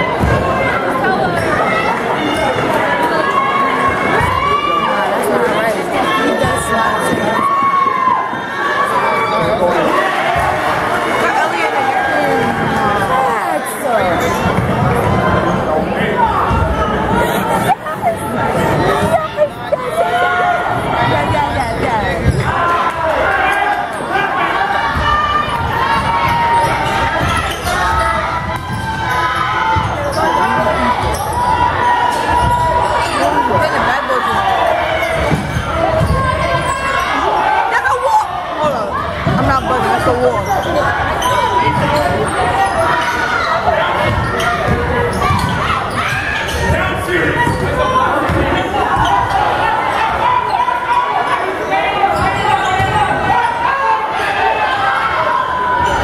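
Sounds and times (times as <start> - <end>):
crowd chatter and calls: 0.0 - 56.0.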